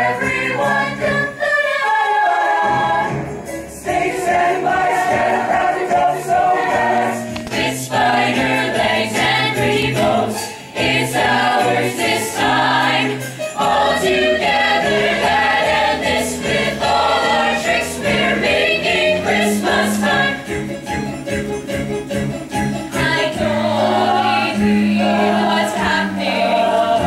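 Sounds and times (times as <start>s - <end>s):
choir singing in parts: 0.0s - 20.6s, 22.9s - 27.0s.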